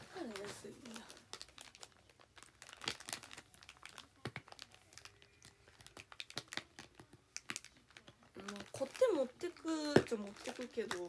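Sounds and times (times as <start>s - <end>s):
packet wrapping crinkling: 0.0s - 11.0s.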